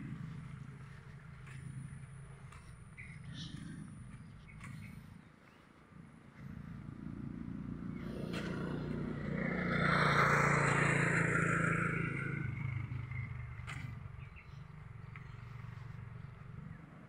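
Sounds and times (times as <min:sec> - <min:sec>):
vehicle passing by: 0:00.0 - 0:17.0.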